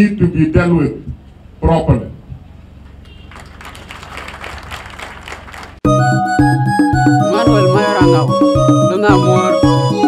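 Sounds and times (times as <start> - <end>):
crowd clapping: 3.3 - 5.8.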